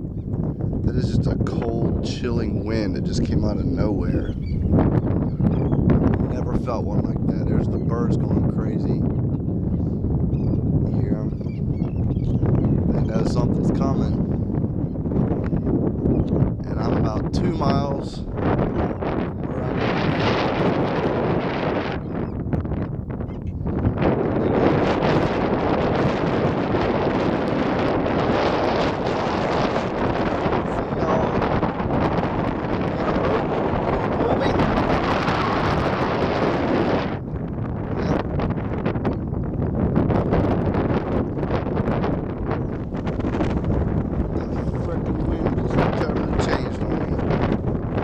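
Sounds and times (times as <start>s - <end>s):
strong wind buffeting microphone: 0.0s - 48.0s.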